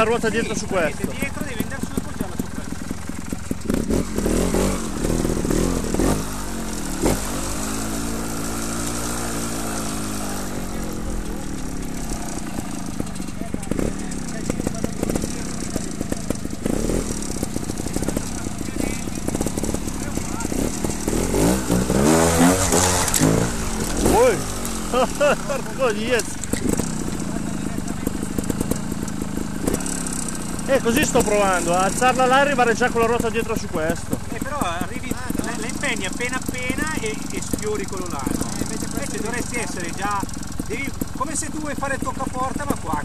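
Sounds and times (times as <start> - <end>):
motorcycle engine idling and revving: 0.0 - 43.0.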